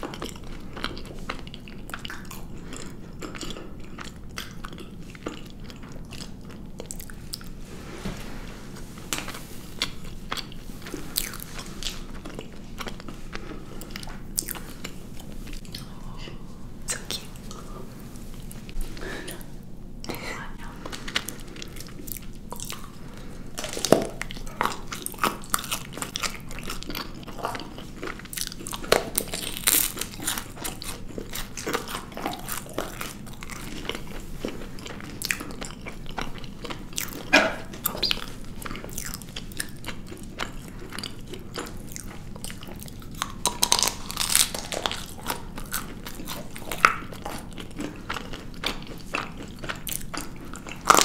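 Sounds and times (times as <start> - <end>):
chewing: 0.0 - 7.6, 9.1 - 19.6, 20.7 - 51.0.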